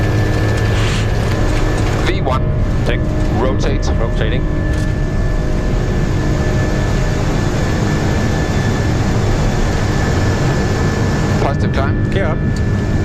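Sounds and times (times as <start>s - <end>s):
high engine whine: 0.0s - 13.0s
jet engine and airflow roar: 0.0s - 13.0s.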